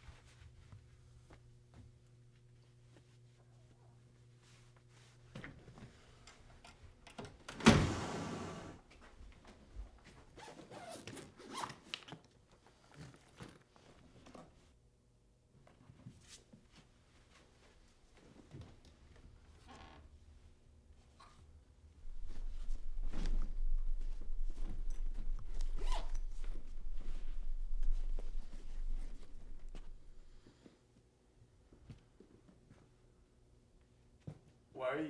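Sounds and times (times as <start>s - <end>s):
suitcase zipper being pulled open: 25.7s - 26.3s.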